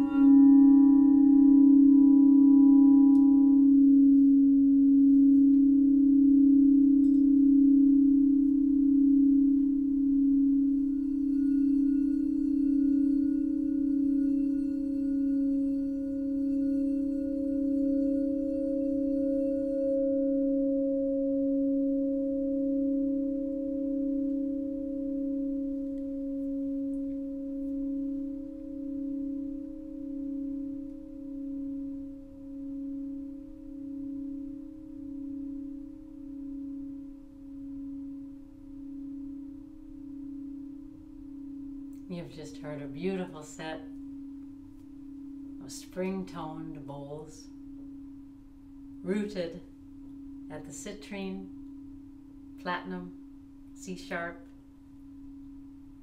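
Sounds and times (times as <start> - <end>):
faint high ringing: 0.0 - 56.0
singing bowls ringing low chord: 0.0 - 56.0.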